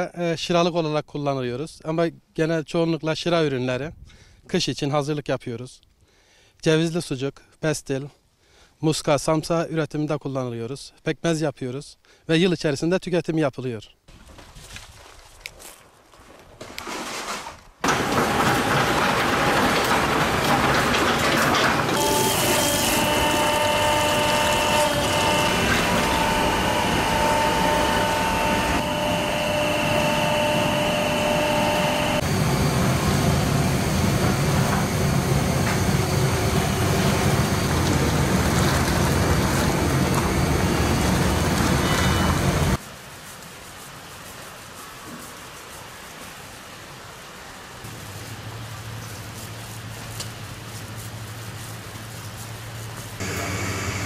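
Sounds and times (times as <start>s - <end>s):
grape-crushing machine whining: 17.8s - 42.8s, 53.2s - 54.0s
liquid boiling rumble: 32.4s - 42.8s.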